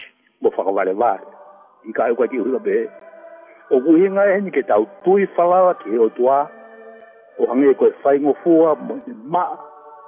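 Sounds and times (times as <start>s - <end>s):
man speaking: 0.0s - 3.0s, 3.6s - 6.5s, 7.4s - 9.7s
faint steady music tone: 0.0s - 10.0s.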